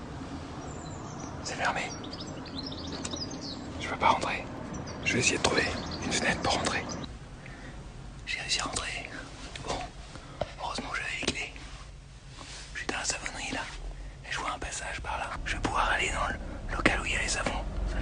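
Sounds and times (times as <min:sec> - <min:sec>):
man whispering: 0:01.4 - 0:02.0, 0:03.7 - 0:07.1, 0:08.2 - 0:11.8, 0:12.6 - 0:18.0.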